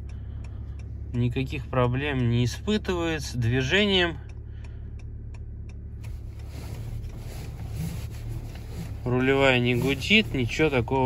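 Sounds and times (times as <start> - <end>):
car engine hum: 0.0 - 11.0
faint ticks: 0.0 - 11.0.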